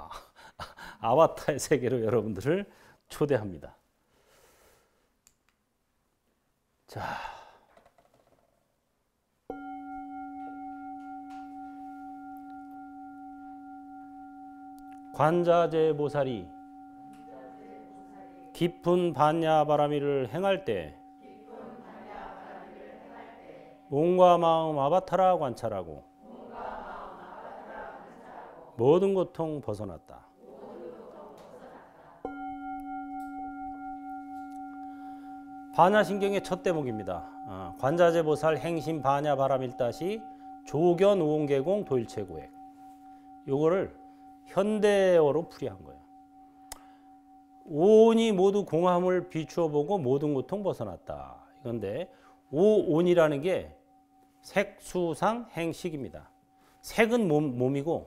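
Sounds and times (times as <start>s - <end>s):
singing bowl ringing: 9.5s - 28.1s, 32.2s - 58.0s.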